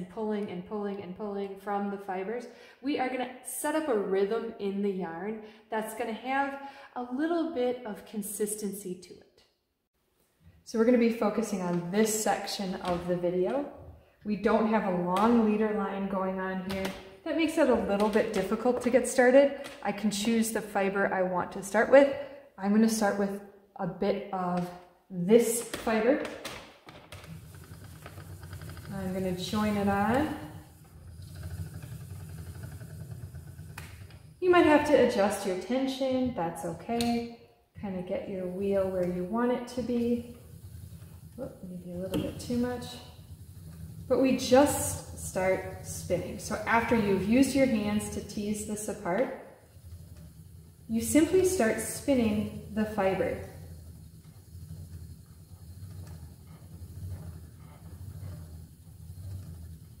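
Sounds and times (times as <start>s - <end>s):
spinning wheel whirring: 27.1s - 35.6s, 38.5s - 60.0s
spinning wheel ticking: 27.2s - 34.8s.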